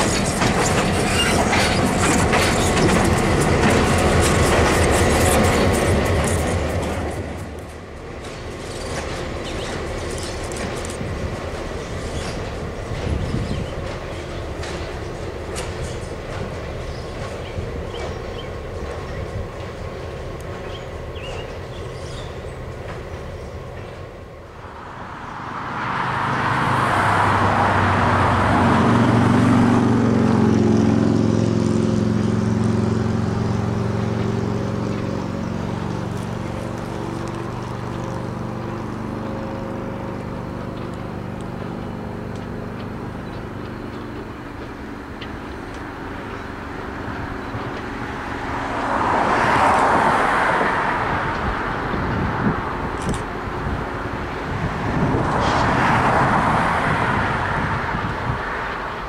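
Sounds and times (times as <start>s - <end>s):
train wheels clicking over rail joints: 0.0s - 24.6s, 31.7s - 54.6s, 58.1s - 59.0s
low diesel engine drone: 0.0s - 59.0s.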